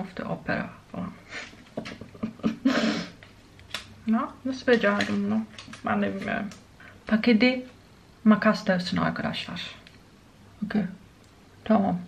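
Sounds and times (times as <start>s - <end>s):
woman laughing breathily: 2.2s - 3.2s.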